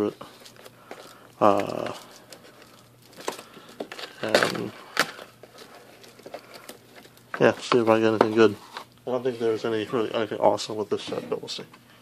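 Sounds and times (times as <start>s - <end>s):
plastic shrink wrap crinkling: 0.0s - 8.9s.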